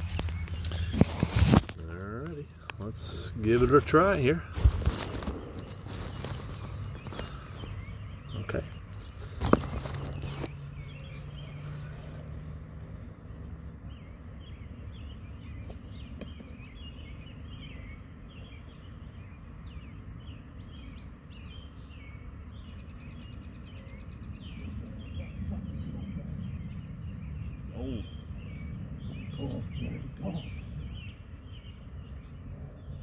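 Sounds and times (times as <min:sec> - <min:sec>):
rustling noise: 0:00.0 - 0:01.9, 0:03.4 - 0:07.8, 0:08.9 - 0:14.7
low outdoor hum: 0:00.0 - 0:33.0
small birds chirping: 0:00.0 - 0:33.0.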